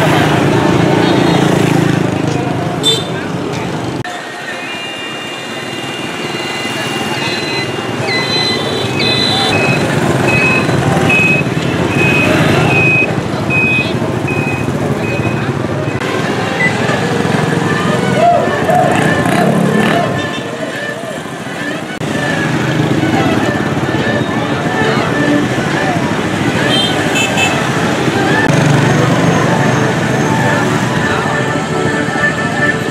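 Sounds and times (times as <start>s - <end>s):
crowd voices: 0.0s - 32.9s
motorbike traffic passing: 0.0s - 32.9s.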